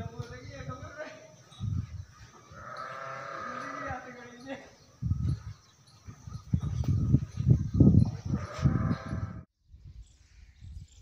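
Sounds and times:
buffalo calling: 2.4s - 4.4s.

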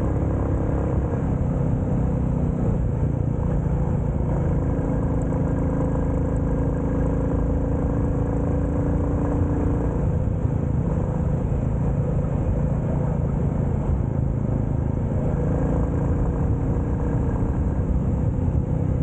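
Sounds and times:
motorcycle engine cruising: 0.0s - 19.0s
road and wind rumble: 0.0s - 19.0s.

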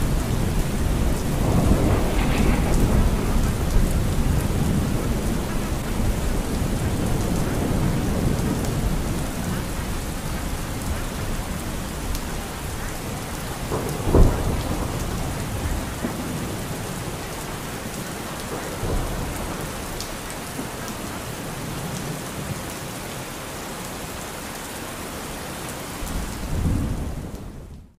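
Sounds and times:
thunder rumbling: 0.0s - 22.5s, 26.0s - 27.9s
steady rain: 0.0s - 28.0s.

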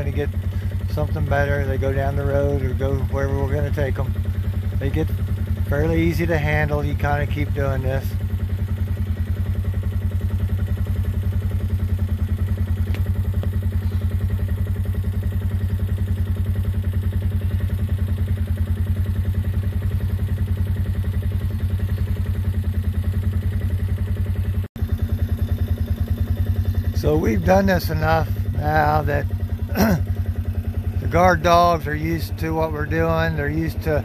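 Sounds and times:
small vehicle engine running: 0.0s - 34.0s.

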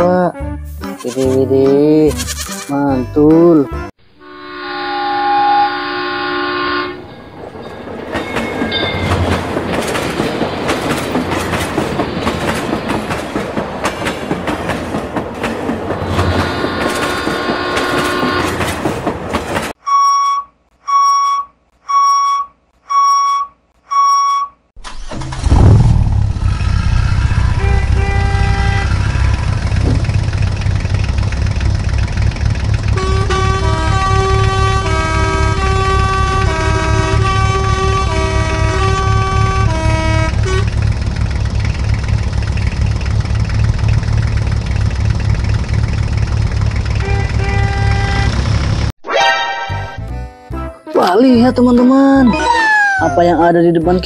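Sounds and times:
horn toots: 4.2s - 7.1s, 16.0s - 18.8s, 26.5s - 30.0s, 32.8s - 40.8s, 46.9s - 48.7s
train horn: 4.2s - 7.2s, 16.0s - 18.7s, 27.3s - 29.7s, 32.9s - 40.8s, 47.0s - 48.4s
truck engine rumbling: 5.0s - 49.0s
passing train rattle: 5.8s - 19.8s, 26.4s - 48.9s
level crossing warning beeps: 19.8s - 24.6s.

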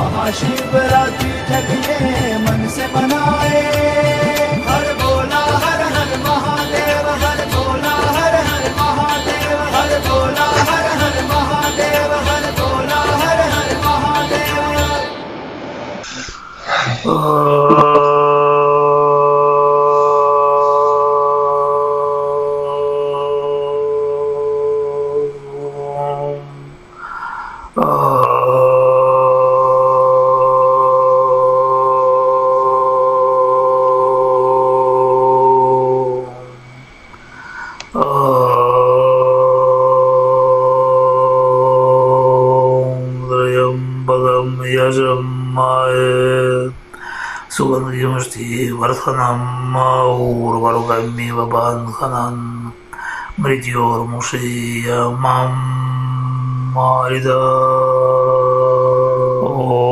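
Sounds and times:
man chanting: 0.0s - 15.3s, 16.1s - 26.9s, 27.7s - 36.7s, 37.9s - 59.9s
man chanting low notes: 16.2s - 26.9s, 47.5s - 52.8s, 53.4s - 59.9s.

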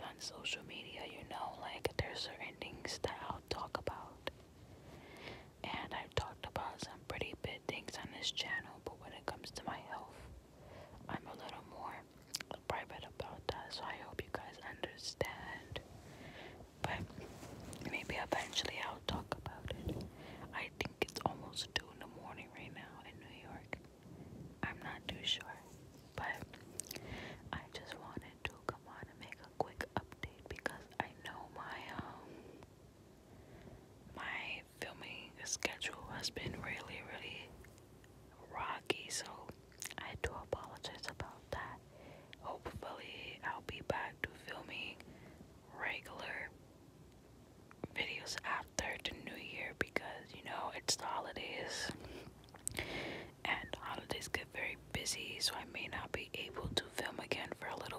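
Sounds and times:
person whispering: 0.0s - 4.3s, 5.6s - 10.3s, 11.0s - 15.8s, 16.8s - 23.8s, 24.6s - 32.2s, 34.2s - 37.5s, 38.4s - 41.8s, 42.4s - 45.0s, 45.7s - 46.5s, 47.8s - 52.0s, 53.4s - 57.9s.

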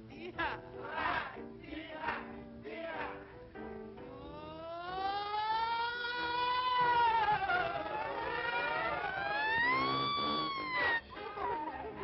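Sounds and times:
siren-like wailing tone: 4.6s - 11.2s.

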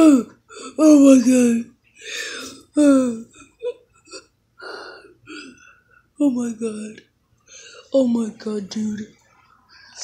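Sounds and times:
faint breathy noises: 7.4s - 8.0s.

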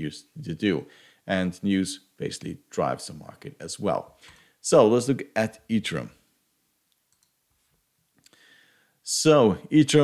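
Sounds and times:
faint computer clicks: 6.9s - 7.4s.

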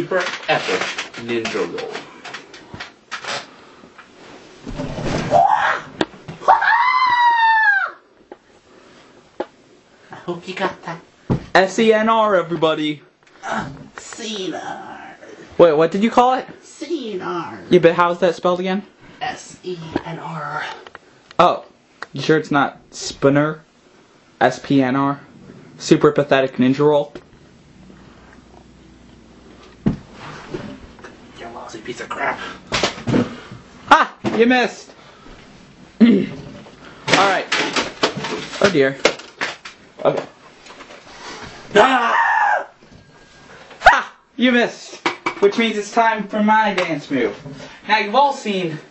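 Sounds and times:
boy screaming: 5.3s - 8.1s, 41.7s - 42.8s, 43.8s - 44.2s.

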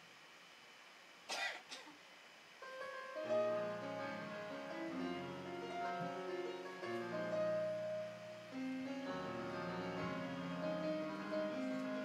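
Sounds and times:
person coughing: 1.3s - 1.9s.

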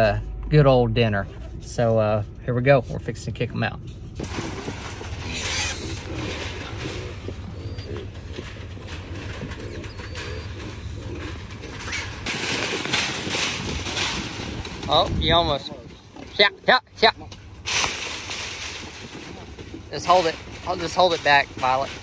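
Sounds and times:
hogs grunting: 4.2s - 17.6s
hogs scuffling in a cage: 4.2s - 22.0s
wind rumble on microphone: 10.6s - 16.4s.

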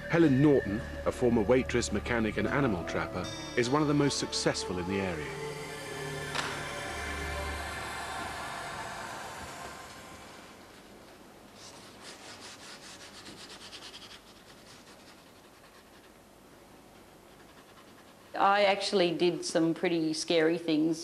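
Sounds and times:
background music: 0.0s - 10.8s
paint scrubbing on canvas: 11.6s - 16.2s, 16.9s - 18.6s.

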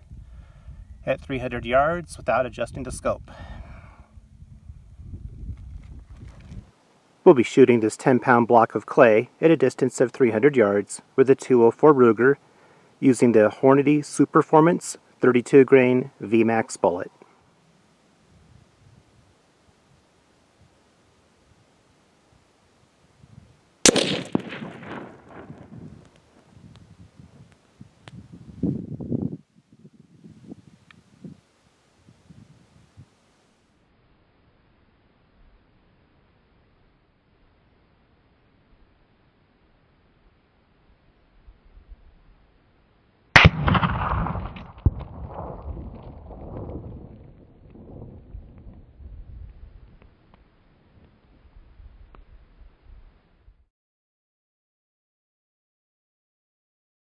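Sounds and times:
rifle shot with echo: 23.8s - 26.0s, 43.4s - 46.0s.

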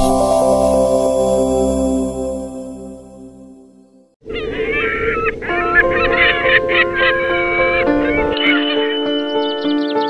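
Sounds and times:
held music chord: 0.0s - 4.2s, 5.6s - 10.0s
birds singing and warbling: 4.3s - 10.0s.

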